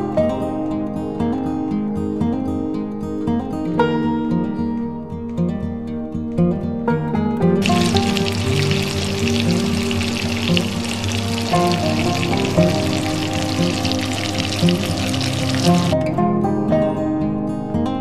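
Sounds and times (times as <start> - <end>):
acoustic guitar music: 0.0 - 18.0
cutlets sizzling in hot oil: 7.6 - 16.0.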